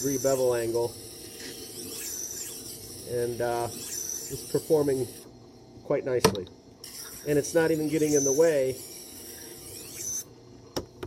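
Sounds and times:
knife grinding on whetstone: 0.0 - 5.2, 6.8 - 10.2.

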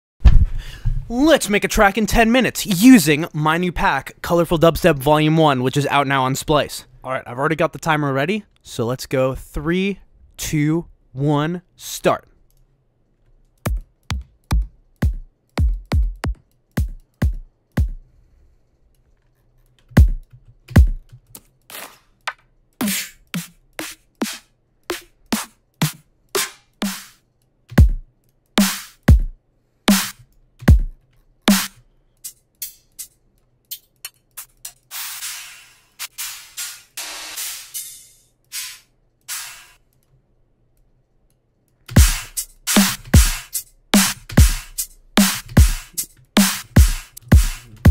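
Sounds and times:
kick and snare drum hits: 0.2 - 0.6, 13.7 - 18.0, 20.0 - 20.2, 20.8 - 21.0, 27.8 - 28.0, 28.6 - 30.9, 31.5 - 31.7, 42.0 - 47.9.

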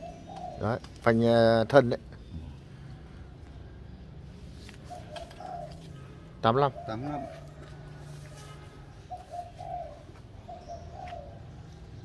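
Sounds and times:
faint bird calling: 2.2 - 7.6, 8.3 - 11.6.

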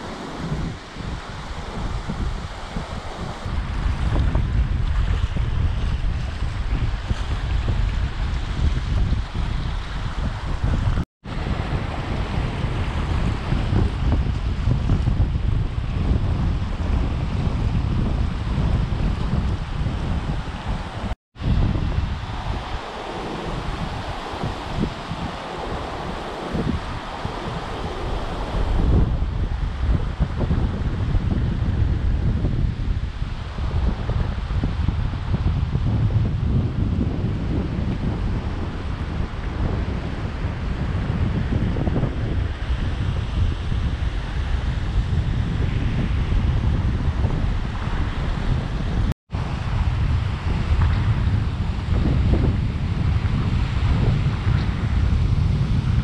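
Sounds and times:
surf washing over sand: 0.0 - 56.0
wind buffeting microphone: 0.0 - 56.0.

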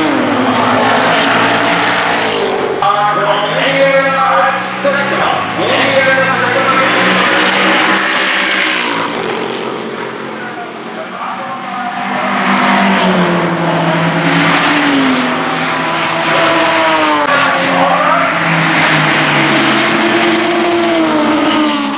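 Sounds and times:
racing car engines passing: 0.0 - 21.9.

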